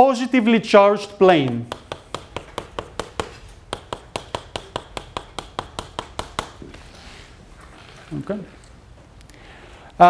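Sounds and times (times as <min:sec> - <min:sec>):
chalk tapping on a blackboard: 0:01.1 - 0:06.8.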